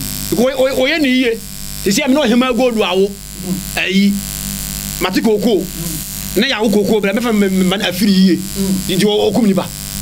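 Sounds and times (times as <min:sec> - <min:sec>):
faint electrical buzz: 0:00.0 - 0:10.0
man speaking: 0:00.3 - 0:04.2, 0:05.0 - 0:09.8.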